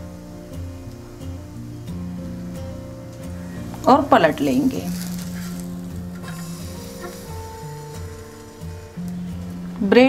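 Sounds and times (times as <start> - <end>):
slow background music: 0.0 - 10.0
bread sizzling in butter: 1.6 - 9.6.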